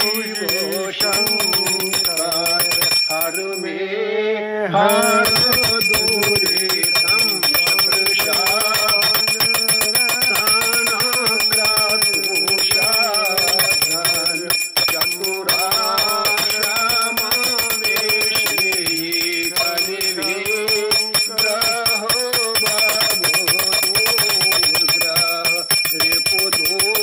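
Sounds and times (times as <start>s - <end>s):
bell rung rapidly: 0.0s - 3.7s, 4.8s - 27.0s
voices singing a hymn: 0.0s - 9.1s, 15.1s - 23.3s.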